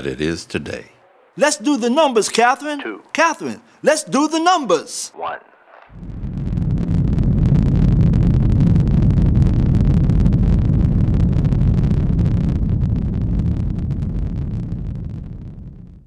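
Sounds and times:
rocket engines rumbling and crackling: 5.3 - 16.0.

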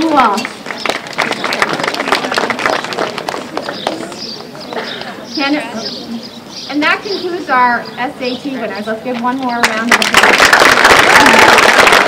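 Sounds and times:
audience applauding: 0.6 - 4.0, 9.9 - 12.0.

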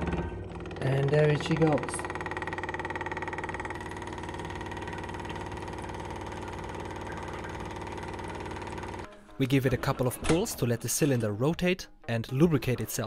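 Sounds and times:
electric fuel pump ticking buzz: 0.0 - 9.1.

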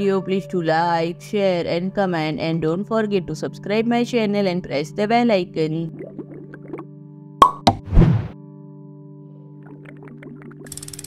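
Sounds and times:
background music with low drone: 0.0 - 11.0.

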